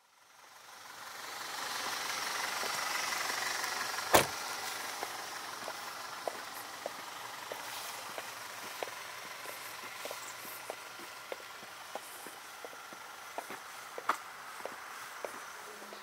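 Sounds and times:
car noise: 0.0 - 16.0
car door shutting: 4.1 - 4.4
high-heeled footsteps clicking: 5.0 - 16.0.

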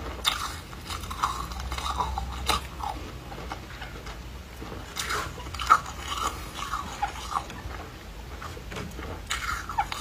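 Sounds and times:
chewing frozen foam ice: 0.0 - 10.0.

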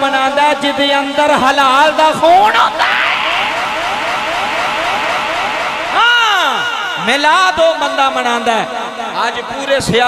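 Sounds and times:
upward sweeping whistle-like tone: 2.5 - 7.6.

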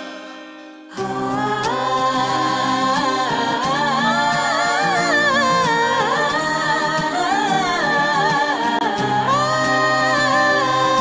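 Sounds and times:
person singing ornamented notes: 0.0 - 11.0
sustained musical accompaniment: 0.0 - 11.0.

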